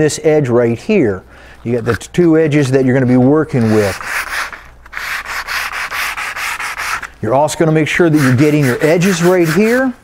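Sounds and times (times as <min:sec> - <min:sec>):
sandpaper rasping on wood: 0:03.5 - 0:07.1, 0:08.0 - 0:10.0.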